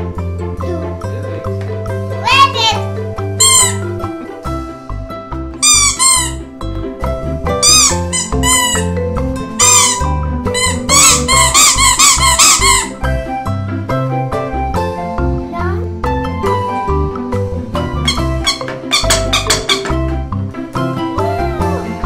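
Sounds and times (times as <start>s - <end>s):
children's background music: 0.0s - 22.0s
rubber squeeze toys squeaking: 3.4s - 3.9s, 5.6s - 6.5s, 7.6s - 9.0s, 9.6s - 13.0s, 18.0s - 20.1s.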